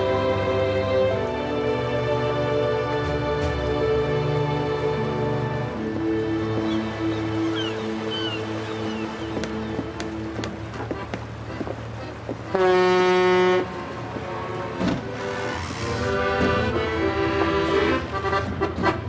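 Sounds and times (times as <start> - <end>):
boat horn: 0.0 - 19.0
soft background music: 0.0 - 19.0.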